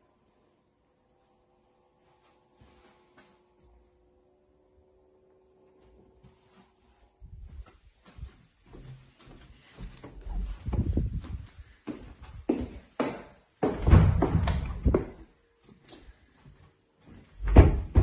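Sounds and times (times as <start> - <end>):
doors knocking shut: 13.7 - 15.2, 17.4 - 18.0
door thud: 13.8 - 15.1, 17.4 - 18.0.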